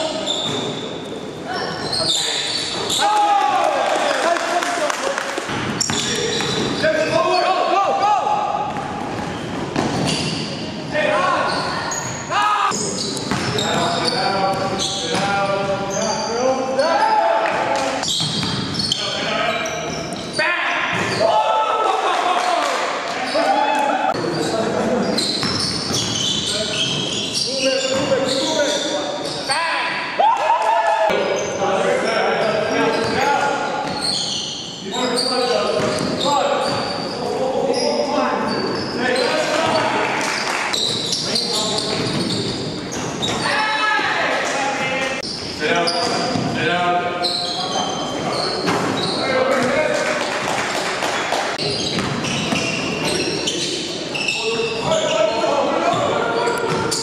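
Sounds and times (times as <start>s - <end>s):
players calling and shouting: 0.0s - 50.5s, 51.1s - 57.0s.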